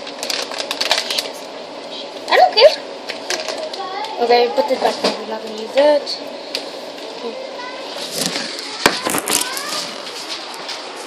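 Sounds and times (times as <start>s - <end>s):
faint children's voices: 2.0s - 6.2s, 7.0s - 11.0s
handling and rustling noise: 7.9s - 11.0s.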